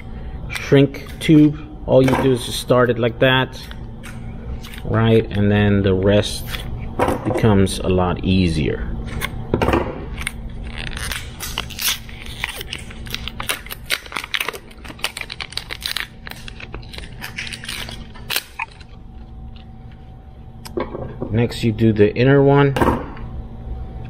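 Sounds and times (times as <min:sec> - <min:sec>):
scissors snipping plastic wrap: 0:10.2 - 0:19.0
plastic wrap crackling and tearing: 0:10.2 - 0:19.6.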